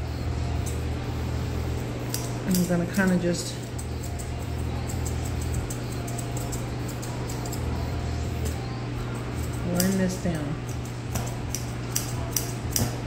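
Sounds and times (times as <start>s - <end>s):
steady low hum: 0.0s - 13.0s
grooming shears snipping: 2.1s - 7.7s, 8.4s - 13.0s.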